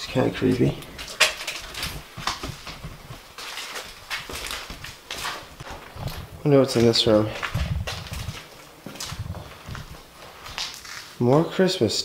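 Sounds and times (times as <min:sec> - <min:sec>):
footsteps with scuffs: 0:00.3 - 0:11.6.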